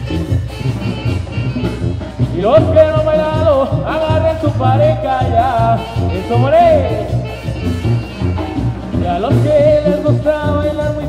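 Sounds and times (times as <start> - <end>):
brass band dance music: 0.0 - 11.0.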